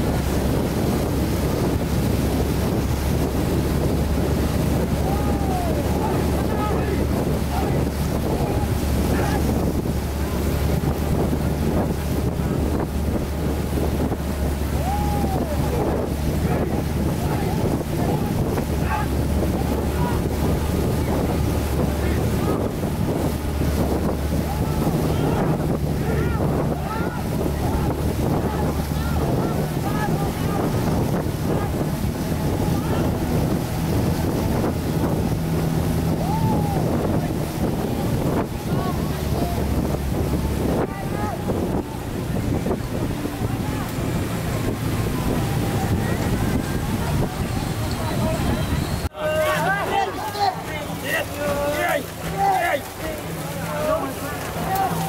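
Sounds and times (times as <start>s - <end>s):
low steady engine hum: 0.0s - 55.0s
water rushing past boat: 0.0s - 55.0s
wind buffeting microphone: 0.0s - 55.0s
paddlers shouting cries: 1.9s - 55.0s.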